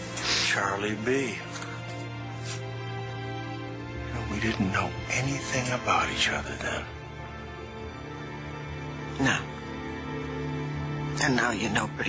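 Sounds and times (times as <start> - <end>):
soft sustained background music: 0.0 - 12.0.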